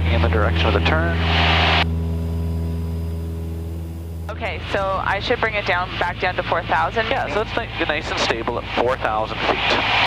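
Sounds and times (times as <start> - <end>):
light aircraft engine droning: 0.0 - 10.0.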